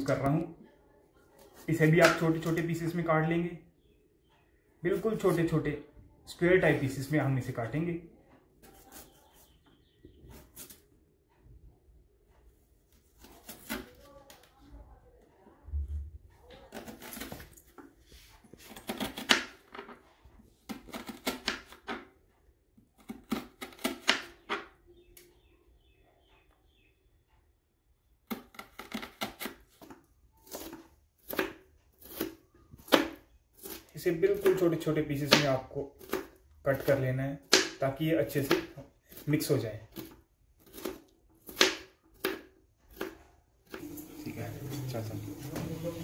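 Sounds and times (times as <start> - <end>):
knife chopping on wooden board: 2.0 - 2.3, 28.3 - 34.6, 35.3 - 37.8, 38.4 - 39.2, 39.9 - 44.0.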